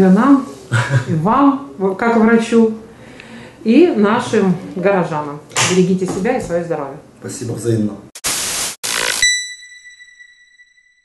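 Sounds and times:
static-like hiss bursts: 8.2s - 9.3s
bell-like ding: 9.2s - 11.0s.

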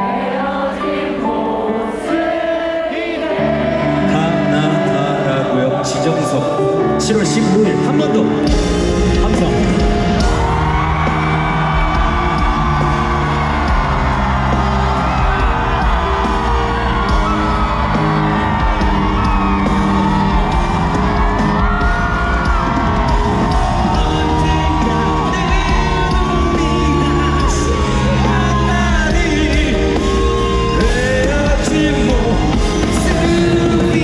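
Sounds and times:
lead voice singing: 0.0s - 6.9s, 7.5s - 34.0s
live pop band music: 0.0s - 34.0s
crowd whooping and yelling: 8.4s - 34.0s.

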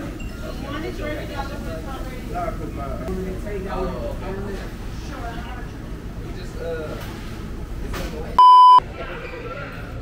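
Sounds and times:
murmur of a busy room: 0.0s - 10.0s
censor bleep: 8.4s - 8.8s.

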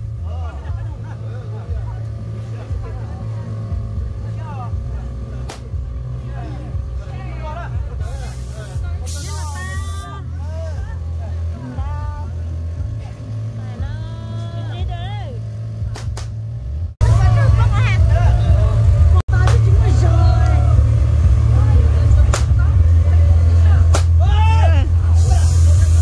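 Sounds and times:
people talking and calling: 0.0s - 16.4s, 17.0s - 26.0s
steady low rumble: 0.0s - 26.0s.

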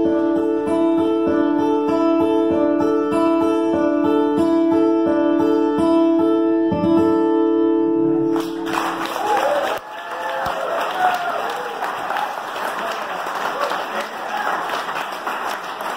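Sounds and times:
acoustic guitar chord ringing: 0.0s - 9.0s
audience clapping and cheering: 8.3s - 15.9s.

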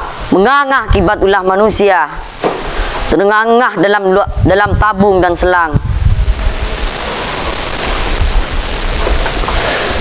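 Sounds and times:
wind buffeting microphone: 4.1s - 10.0s.

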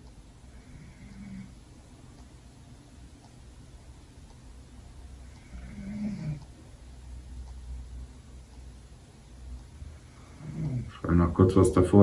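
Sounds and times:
low room hum: 0.0s - 12.0s
man talking: 10.5s - 12.0s.

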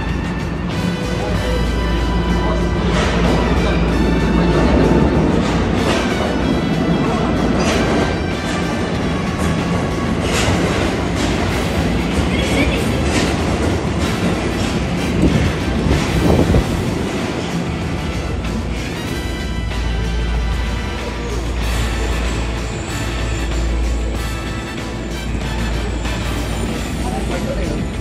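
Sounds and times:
sharp train clacks: 0.0s - 28.0s
subway train running: 0.0s - 28.0s.

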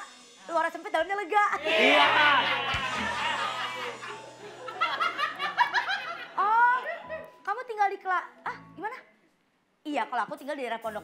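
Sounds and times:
man laughing: 1.8s - 6.0s.

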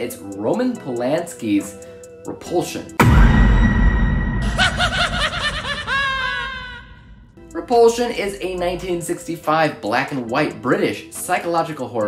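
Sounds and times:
high-pitched laugh: 4.4s - 7.0s.

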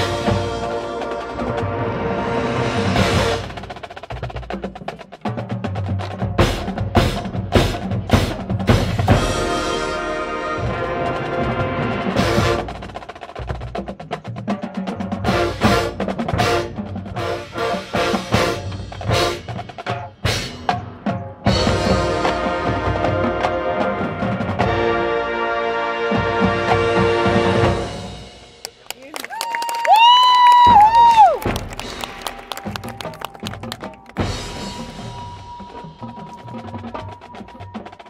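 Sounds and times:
wind instruments holding chords: 0.0s - 3.8s, 9.1s - 13.0s, 21.5s - 28.6s
drums and percussion accents: 0.0s - 25.4s, 26.1s - 38.0s.

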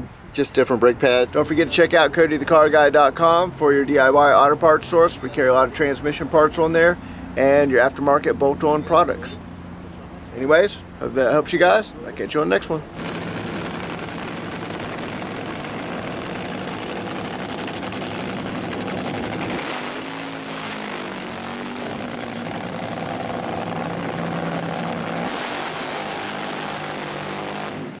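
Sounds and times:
race car engines running: 1.2s - 28.0s.

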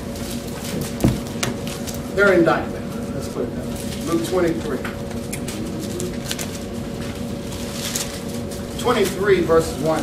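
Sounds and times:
steady hum: 0.0s - 10.0s
thin paper pages rustling: 5.8s - 9.2s.

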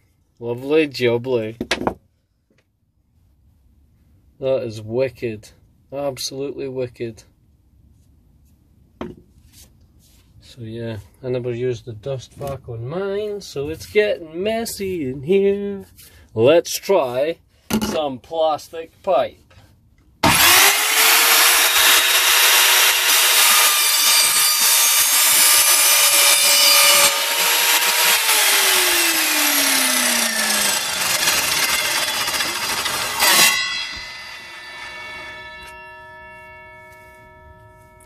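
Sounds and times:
mitre saw cutting plastic pipe: 20.2s - 37.3s.

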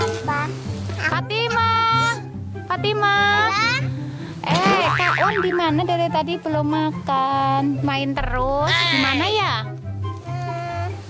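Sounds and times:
pulsing bass line: 8.2s - 9.6s.

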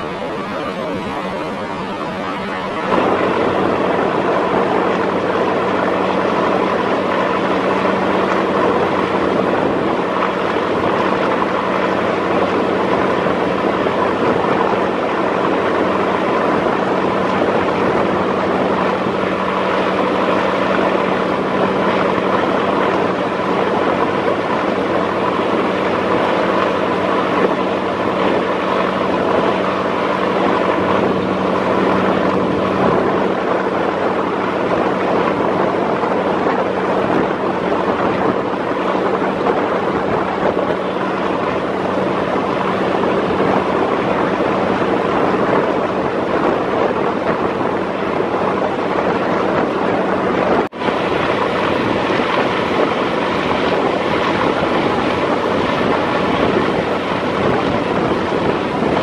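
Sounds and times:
boat diesel engine droning: 0.0s - 59.0s
rushing water: 0.0s - 59.0s
wind: 0.0s - 59.0s.

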